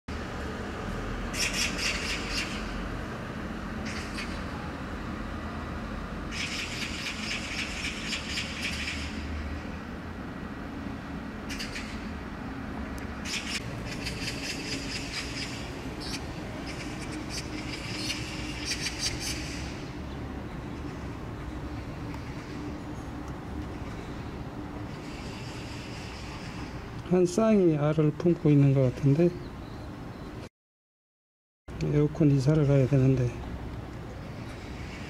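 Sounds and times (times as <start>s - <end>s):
distant city traffic rumble: 0.1s - 30.5s, 31.7s - 35.0s.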